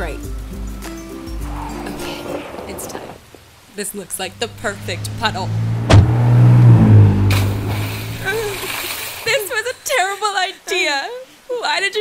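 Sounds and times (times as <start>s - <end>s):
car engine hum: 0.2s - 9.4s
splash of water: 7.2s - 9.6s.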